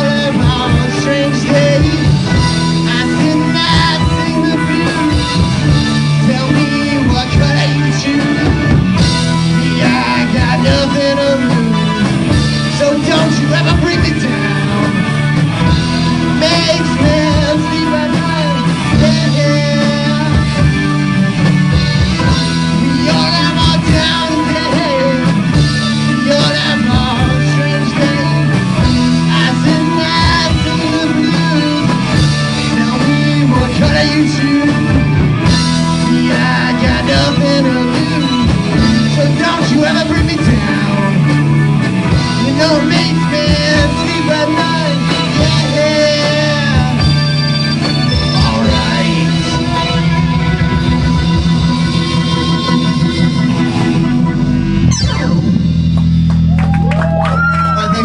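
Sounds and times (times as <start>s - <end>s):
bending guitar line: 0.0s - 58.0s
live rock band playing: 0.0s - 58.0s.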